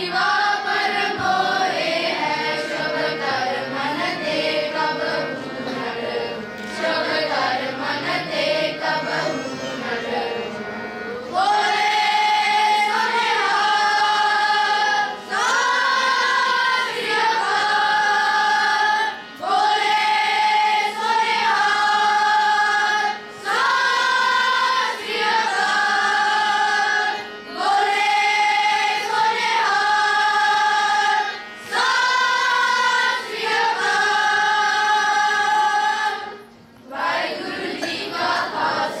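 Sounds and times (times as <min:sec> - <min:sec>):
children's choir singing: 0:00.0 - 0:39.0.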